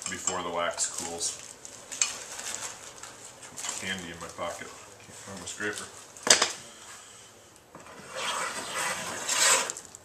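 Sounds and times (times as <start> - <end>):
man talking: 0.0 - 1.4, 3.7 - 6.0.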